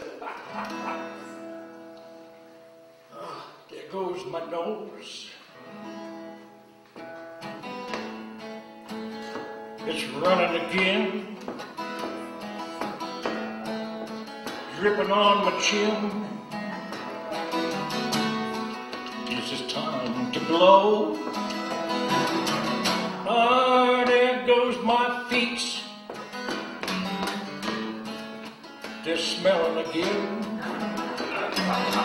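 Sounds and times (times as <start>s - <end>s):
acoustic guitar strummed: 5.6s - 32.0s.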